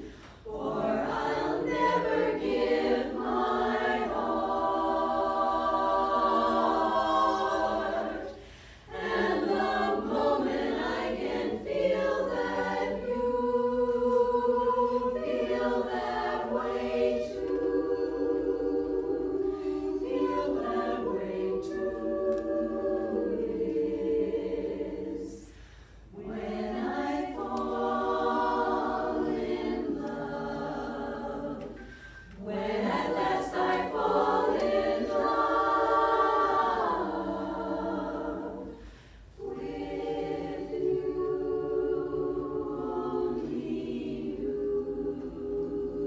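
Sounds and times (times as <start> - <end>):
women's chorus singing a cappella: 0.0 - 46.0.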